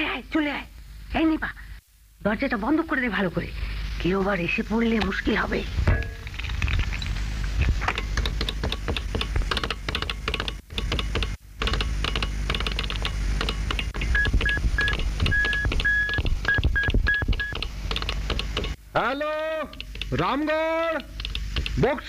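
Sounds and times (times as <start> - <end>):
rapid telegraph clicking: 7.9 - 18.8, 20.9 - 22.0.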